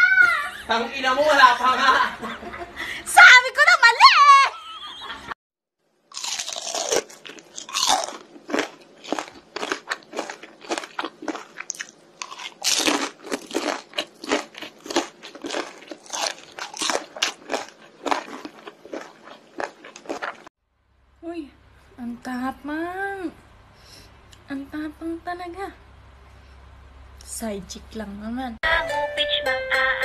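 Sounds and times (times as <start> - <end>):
crunchy chewing: 6.1 - 20.5.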